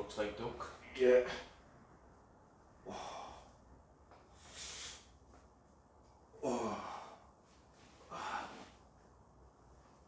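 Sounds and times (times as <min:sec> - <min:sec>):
man sighing in pain: 0:06.4 - 0:07.2, 0:08.1 - 0:08.7.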